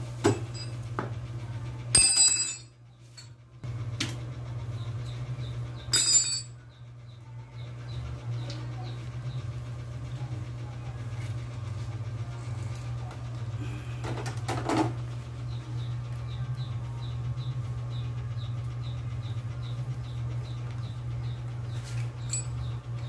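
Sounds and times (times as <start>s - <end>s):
steady low hum: 0.0s - 23.0s
metal clanks with ringing: 0.3s - 0.8s, 1.9s - 3.4s, 5.9s - 6.6s, 22.2s - 22.7s.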